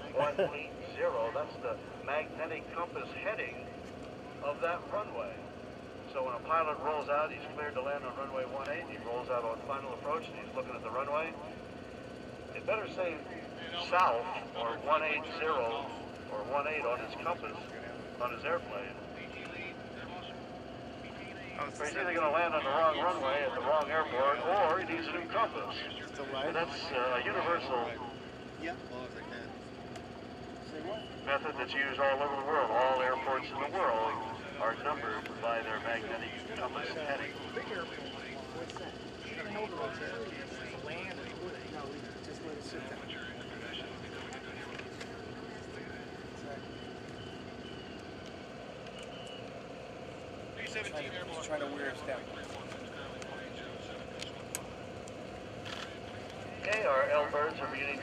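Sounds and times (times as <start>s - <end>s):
distant propeller plane engine: 0.0s - 58.0s
faint voices: 0.0s - 58.0s.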